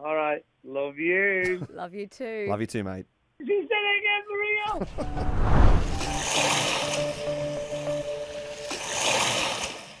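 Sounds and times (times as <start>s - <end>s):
rushing surf-like noise: 5.0s - 7.4s.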